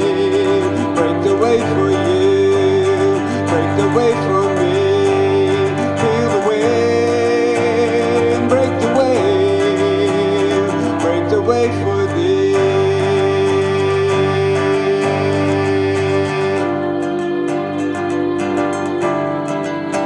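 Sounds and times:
keyboard chords: 0.0s - 20.0s
sliding held melody line: 0.0s - 20.0s
strummed acoustic guitar: 0.0s - 20.0s.

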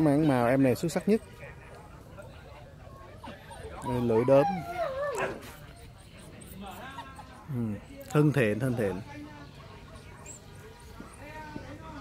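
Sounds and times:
puppy whimpering: 3.0s - 7.4s.

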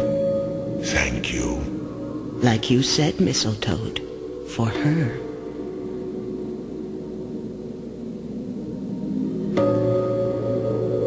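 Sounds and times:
soft sustained score music: 0.0s - 11.0s.

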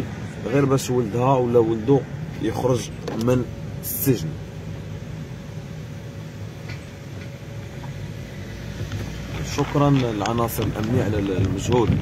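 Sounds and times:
car interior road rumble: 0.0s - 12.0s.

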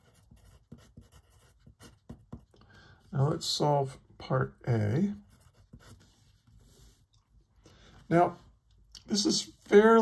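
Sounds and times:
pencil scratching on paper: 0.0s - 2.6s, 4.9s - 7.0s.

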